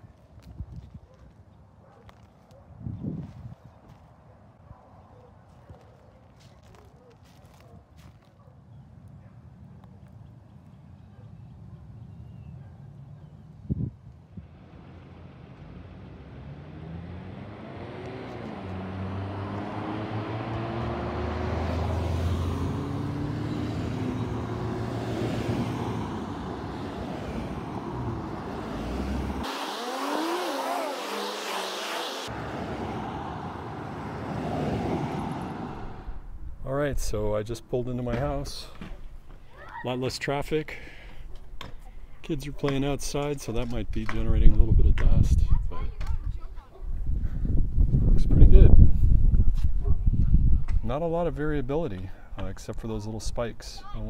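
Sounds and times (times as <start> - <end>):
cars accelerating past: 14.4 - 36.2.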